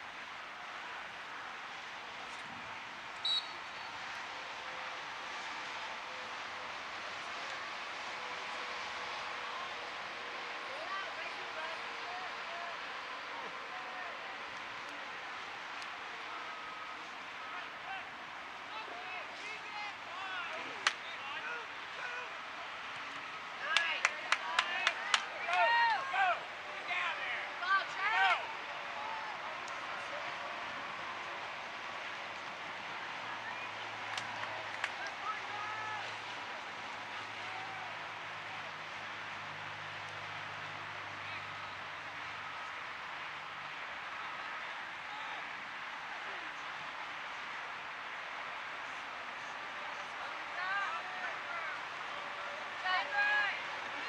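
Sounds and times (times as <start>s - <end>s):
players shouting: 3.2s - 54.0s.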